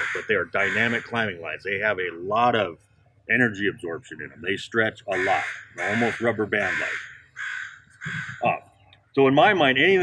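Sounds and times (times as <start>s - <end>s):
crows cawing: 0.0s - 1.4s, 5.1s - 8.6s.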